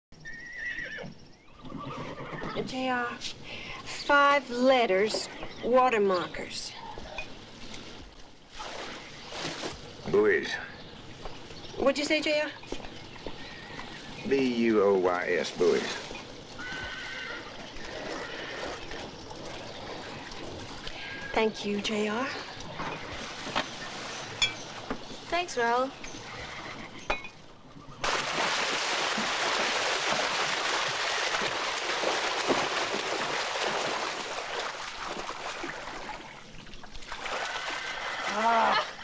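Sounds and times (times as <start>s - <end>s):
outdoor background sound: 0.1s - 39.0s
horse whinnying: 0.2s - 2.7s, 16.6s - 18.8s, 26.2s - 27.1s
horse whinnying faintly: 16.6s - 18.8s.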